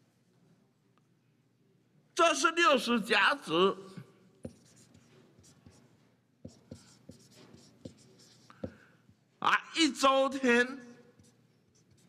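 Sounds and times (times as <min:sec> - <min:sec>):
marker scratching on paper: 0:04.4 - 0:08.8, 0:11.1 - 0:12.0.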